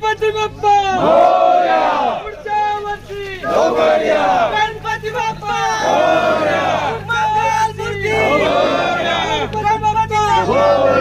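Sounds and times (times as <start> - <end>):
crowd of men chanting: 0.9 - 2.4, 3.0 - 9.5, 10.3 - 11.0.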